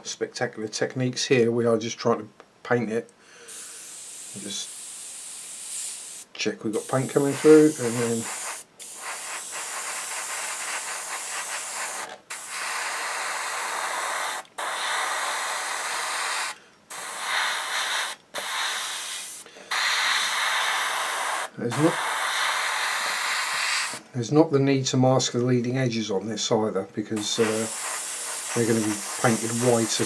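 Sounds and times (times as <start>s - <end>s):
airbrush spraying hiss: 3.5s - 24.0s, 27.2s - 30.0s.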